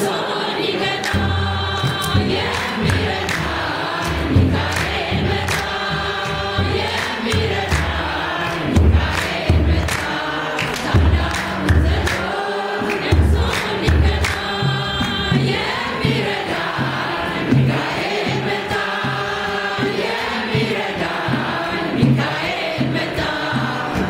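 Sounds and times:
hand drum beat: 0:00.0 - 0:24.0
women's choir singing a hymn: 0:00.0 - 0:24.0
hand claps: 0:00.6 - 0:24.0.

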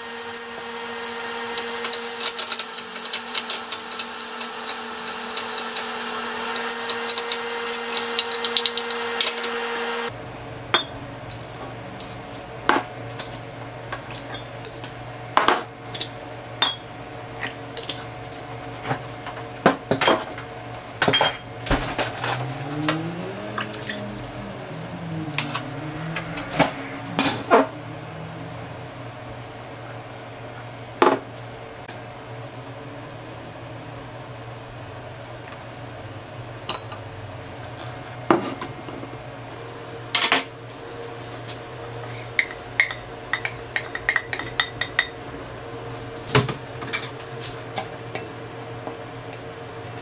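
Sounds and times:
steady low hum: 0:10.0 - 0:50.0
glass bottle and mug clinking: 0:36.7 - 0:37.0.

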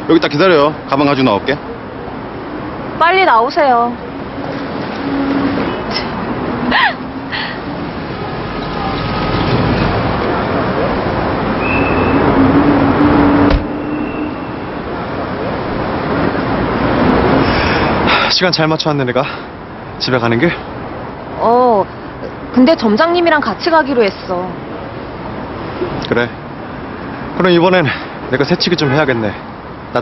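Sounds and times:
street traffic noise: 0:00.0 - 0:30.0
vehicle passing: 0:02.2 - 0:18.3.

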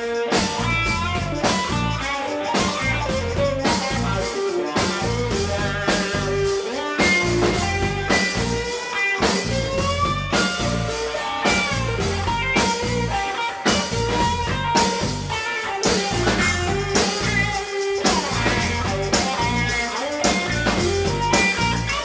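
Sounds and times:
bass guitar: 0:00.0 - 0:22.0
drum kit beat: 0:00.0 - 0:22.0
electric guitar bending notes: 0:00.0 - 0:22.0.

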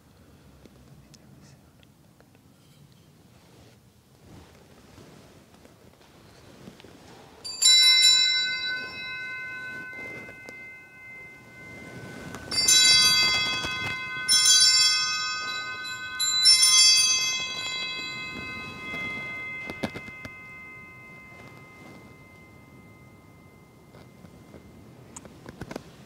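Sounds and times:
hand bells ringing: 0:07.4 - 0:26.0.

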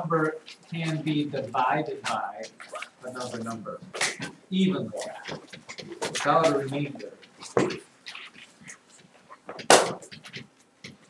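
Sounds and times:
loud sharp crack: 0:04.0 - 0:04.3, 0:09.6 - 0:10.1.

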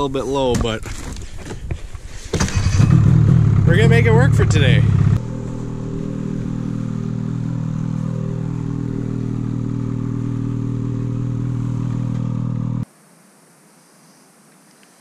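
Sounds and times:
snowmobile engine idling: 0:02.5 - 0:12.8.

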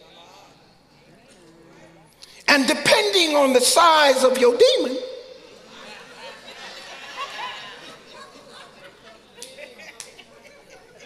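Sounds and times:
faint indistinct voices: 0:00.0 - 0:02.4, 0:05.2 - 0:11.0.

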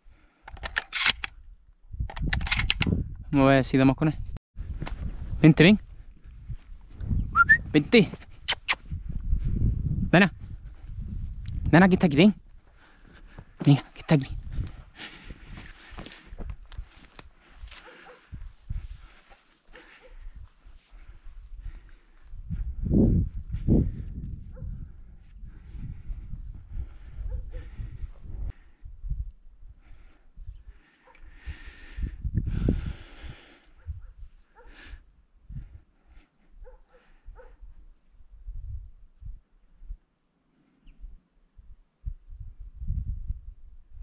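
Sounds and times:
wind buffeting microphone: 0:00.0 - 0:13.6, 0:14.3 - 0:19.2, 0:19.8 - 0:35.9, 0:36.6 - 0:40.0, 0:41.0 - 0:44.0.

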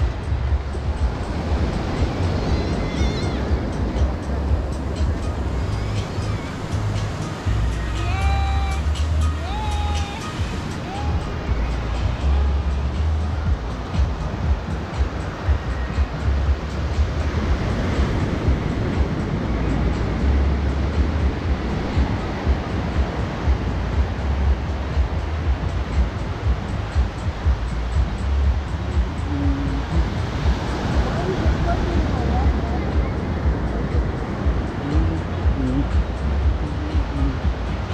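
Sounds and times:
waves washing up beach: 0:00.0 - 0:37.9
wind buffeting microphone: 0:00.0 - 0:37.9
faint distant voices: 0:26.5 - 0:37.9.

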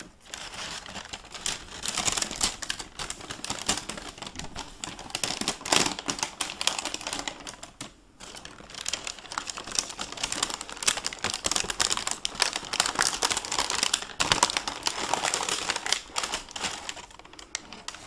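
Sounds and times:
tissue paper crinkling: 0:00.0 - 0:18.0.

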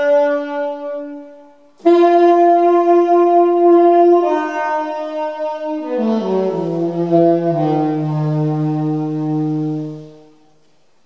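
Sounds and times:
saxophone holding low note: 0:00.0 - 0:10.5.

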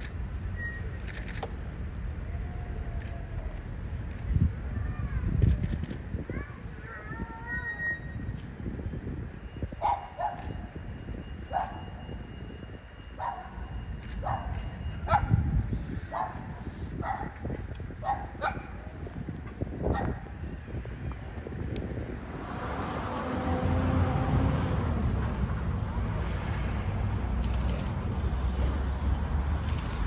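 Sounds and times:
broad rush of noise: 0:00.0 - 0:30.0
dog barking: 0:13.2 - 0:13.6, 0:14.2 - 0:15.3, 0:16.1 - 0:17.4, 0:18.0 - 0:18.7
wind on microphone: 0:14.2 - 0:25.9.

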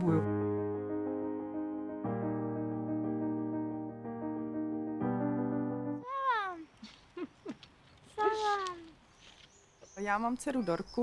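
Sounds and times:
child's high-pitched calls: 0:06.0 - 0:06.7, 0:08.2 - 0:09.0.

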